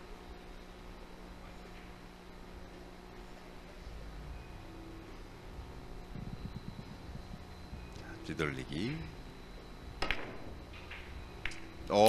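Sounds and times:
billiard balls clicking: 0:10.0 - 0:12.0.

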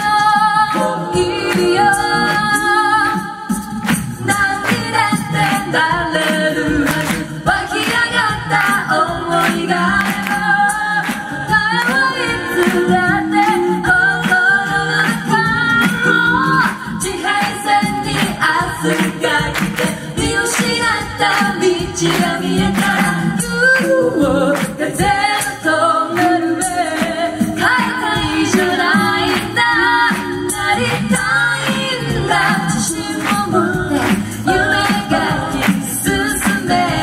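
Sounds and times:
female lead vocal: 0:00.0 - 0:37.0
sustained vocal harmonies: 0:00.0 - 0:37.0
steady beat: 0:00.1 - 0:37.0.

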